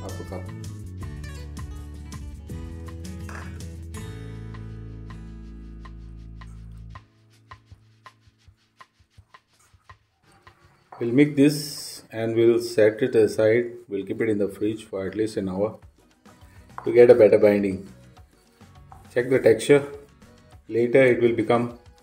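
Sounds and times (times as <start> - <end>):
hand mixing minced meat: 5.5 - 13.0.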